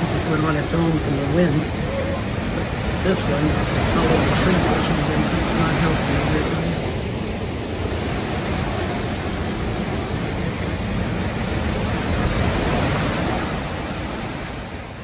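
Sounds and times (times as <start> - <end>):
heavy rain: 0.0 - 15.0
strong wind roaring: 0.0 - 15.0.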